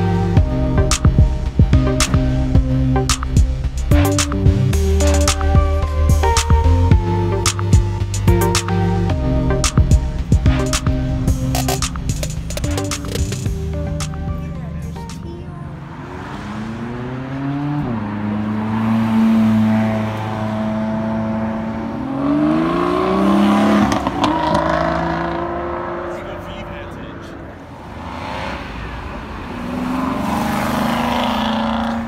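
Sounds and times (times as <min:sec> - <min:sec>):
car revving up: 0:00.0 - 0:32.0
sports cars accelerating hard: 0:15.6 - 0:32.0.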